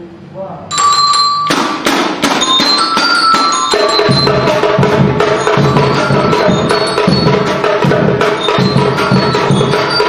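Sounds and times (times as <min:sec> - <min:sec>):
bell lyre melody: 0:00.7 - 0:07.7, 0:08.4 - 0:10.0
bass drum beats: 0:01.4 - 0:10.0
snare drums: 0:01.4 - 0:10.0
surdo drums: 0:01.4 - 0:10.0.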